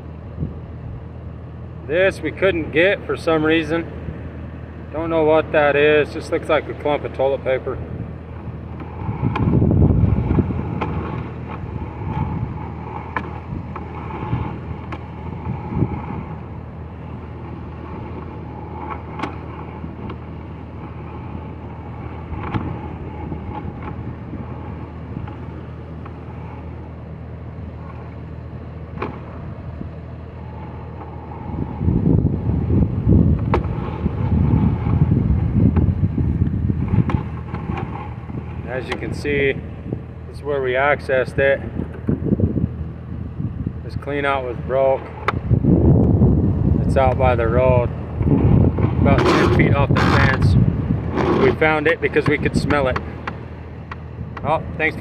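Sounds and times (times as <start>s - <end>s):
engine-like hum: 0.0s - 55.0s
low rumbling: 0.0s - 55.0s.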